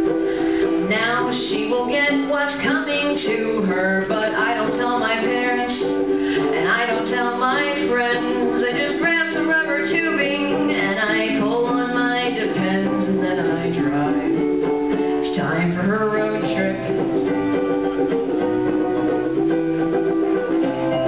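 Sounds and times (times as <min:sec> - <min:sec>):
ukulele playing: 0:00.0 - 0:21.0
woman singing: 0:00.4 - 0:17.7.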